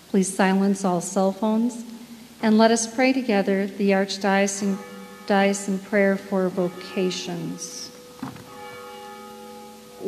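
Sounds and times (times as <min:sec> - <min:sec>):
bell ringing: 0:04.6 - 0:10.0.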